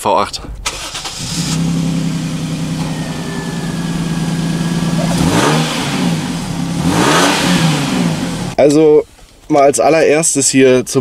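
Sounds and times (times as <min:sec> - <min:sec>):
car engine idling: 0:00.6 - 0:08.6
engine revving blip: 0:01.4 - 0:08.6.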